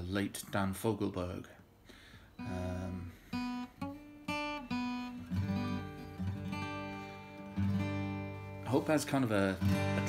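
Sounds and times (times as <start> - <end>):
acoustic guitar notes and chords: 1.8 - 10.0.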